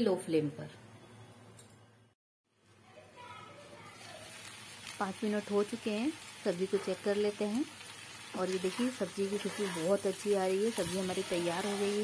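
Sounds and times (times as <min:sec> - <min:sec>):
food sizzling in a pan: 0:03.2 - 0:12.0.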